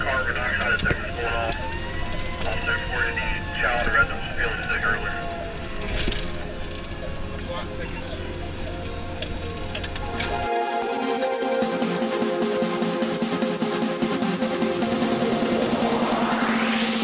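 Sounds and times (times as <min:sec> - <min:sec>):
engine and road rumble in cab: 0:00.0 - 0:10.5
siren wailing: 0:00.0 - 0:17.0
electronic music: 0:04.8 - 0:17.0.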